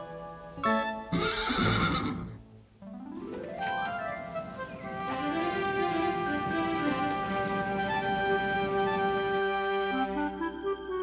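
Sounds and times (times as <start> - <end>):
horse whinnying: 1.1 - 2.4
rising musical sweep: 2.9 - 11.0.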